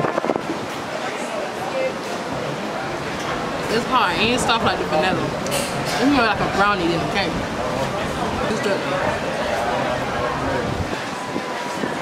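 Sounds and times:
steady wash of noise: 0:00.0 - 0:12.0
faint background voices: 0:00.5 - 0:12.0.

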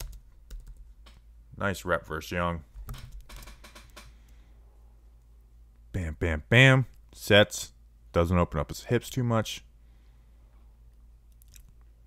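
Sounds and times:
computer keyboard clicking: 0:00.0 - 0:01.2
low steady hum: 0:00.0 - 0:12.0.

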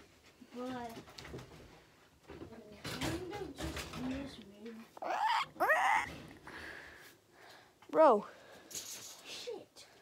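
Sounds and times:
animal whining calls: 0:05.0 - 0:06.2.

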